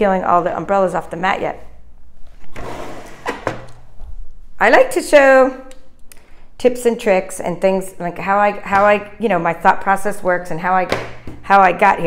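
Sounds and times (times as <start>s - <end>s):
machine scraping across tabletop: 2.5s - 3.4s.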